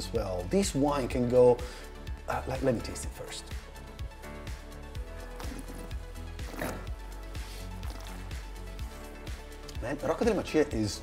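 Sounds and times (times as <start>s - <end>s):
music with steady beat: 0.0s - 11.0s.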